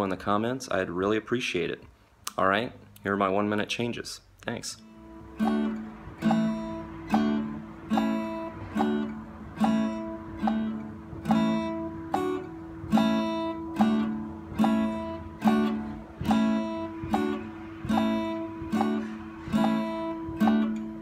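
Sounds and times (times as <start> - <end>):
acoustic guitar strumming chords: 4.8 - 21.0.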